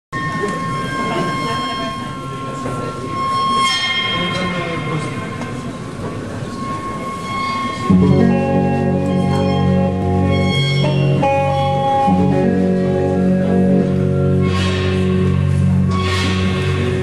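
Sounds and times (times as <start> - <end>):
held high tones drone: 0.2 - 17.0.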